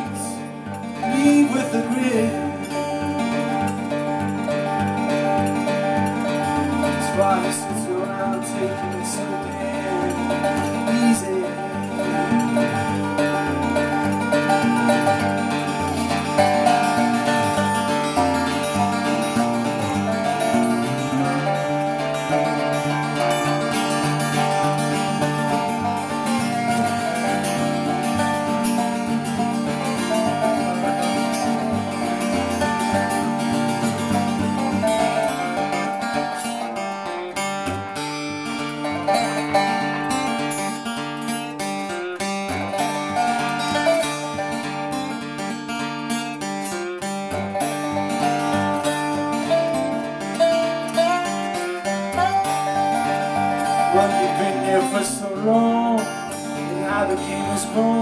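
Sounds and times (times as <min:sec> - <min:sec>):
acoustic guitar playing: 0:00.0 - 0:58.0
steel guitar sliding: 0:00.0 - 0:58.0.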